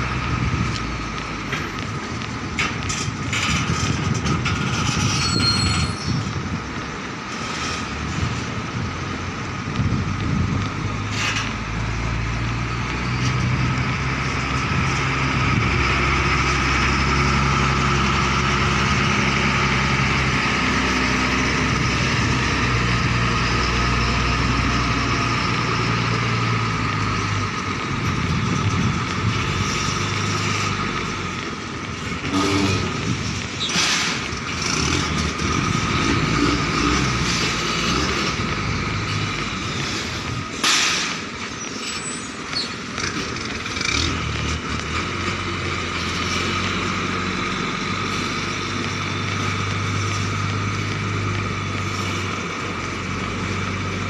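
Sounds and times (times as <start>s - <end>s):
truck engine drone: 0.0s - 54.0s.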